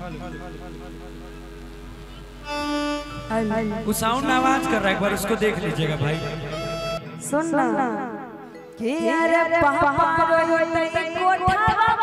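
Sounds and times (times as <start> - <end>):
stage band instrumental music: 2.4 - 7.5.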